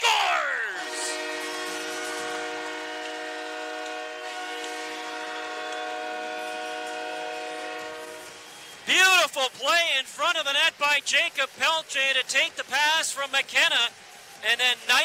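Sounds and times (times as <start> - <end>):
goal horn blast: 0.2 - 8.4.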